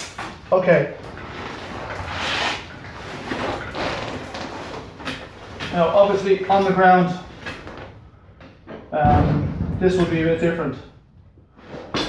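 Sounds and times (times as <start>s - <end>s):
man's voice: 9.0s - 10.8s.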